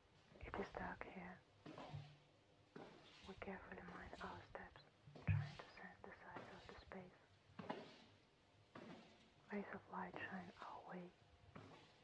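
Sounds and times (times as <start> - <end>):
person whispering: 3.4 - 7.1, 9.5 - 11.1.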